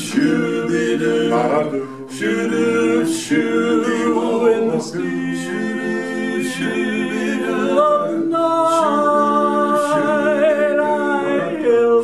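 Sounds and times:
male quartet singing a cappella: 0.0 - 12.0.

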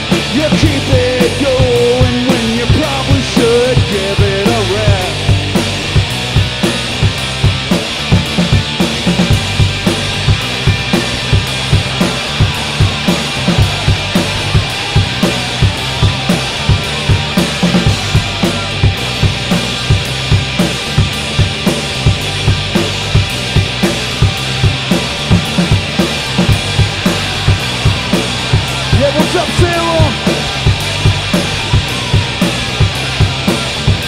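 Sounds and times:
drum kit steady beat: 0.0 - 34.0
electric guitars: 0.0 - 34.0.

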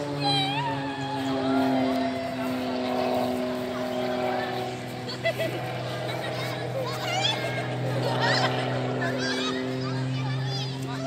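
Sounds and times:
airplane engine drone: 0.0 - 11.0.

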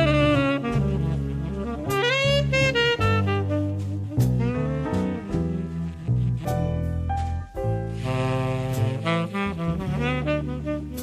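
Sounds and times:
horn melody: 0.0 - 11.0
steady bass line: 0.0 - 11.0.

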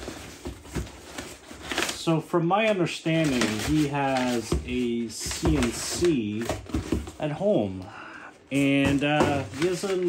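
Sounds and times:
packing paper crinkling: 0.0 - 7.8, 8.5 - 10.0.

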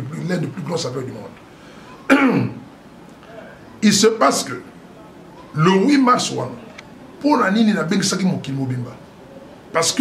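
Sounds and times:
man clearing his throat: 2.1 - 2.6.

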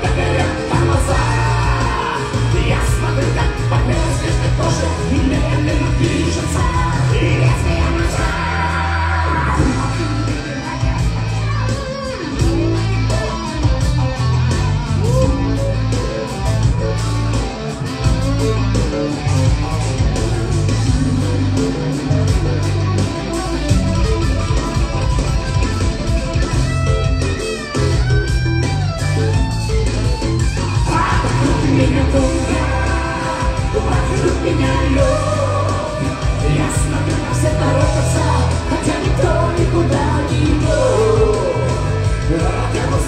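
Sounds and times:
electric guitar: 0.0 - 43.0
heavy bass line: 0.0 - 43.0
loud rock music: 0.0 - 43.0
steady drum beat: 0.0 - 43.0.

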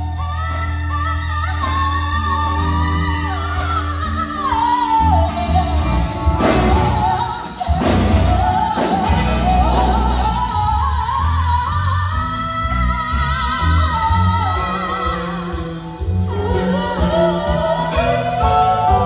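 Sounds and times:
live rock band: 0.0 - 19.0.

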